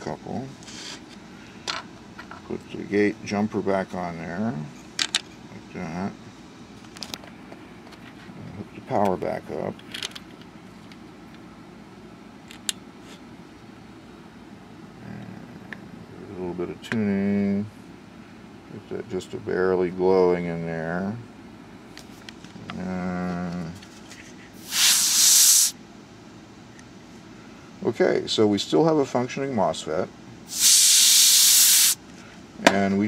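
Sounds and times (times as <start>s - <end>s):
low electronics hum: 0.0s - 31.4s
air hissing out of straw: 24.6s - 25.8s, 30.5s - 32.0s.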